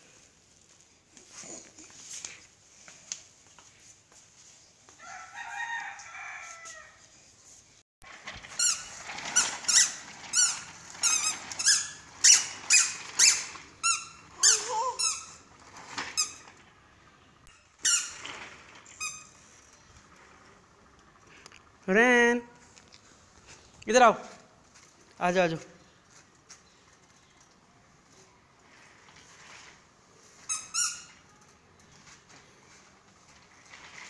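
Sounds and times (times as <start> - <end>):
squeaky shoes squeaking: 8.6 - 15.5, 17.5 - 18.2, 30.5 - 31.5.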